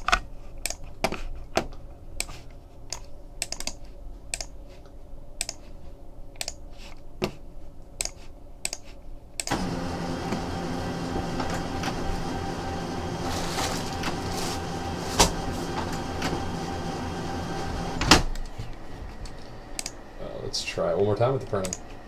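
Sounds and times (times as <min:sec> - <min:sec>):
printer click: 0:09.4 - 0:18.5
printer motor whirring: 0:09.4 - 0:20.4
printer clunk: 0:09.5 - 0:18.4.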